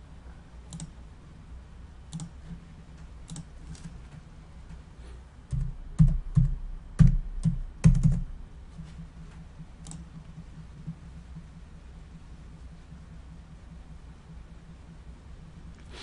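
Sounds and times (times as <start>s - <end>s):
keyboard and mouse clicks: 0.7s - 1.0s, 2.1s - 4.2s, 5.5s - 8.2s, 8.8s - 11.5s.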